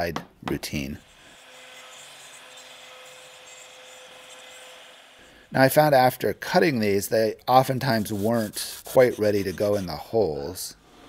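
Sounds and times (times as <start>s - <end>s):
router cutting wood: 1.0s - 5.5s.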